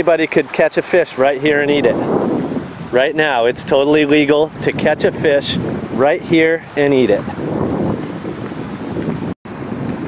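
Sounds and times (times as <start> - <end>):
wind blowing on microphone: 0.0 - 10.0.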